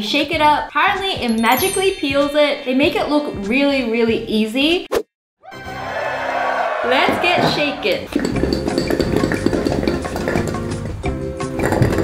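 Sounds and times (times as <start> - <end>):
background music: 0.0 - 4.8, 5.5 - 12.0.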